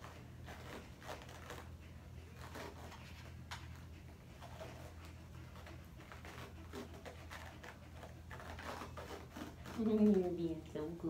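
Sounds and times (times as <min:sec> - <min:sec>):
bandage crackling being unrolled: 0:00.0 - 0:10.8
low room hum: 0:00.0 - 0:11.0.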